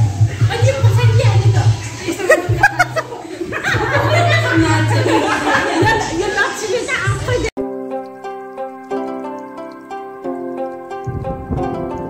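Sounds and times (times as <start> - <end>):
young women giggling: 2.0 - 6.5.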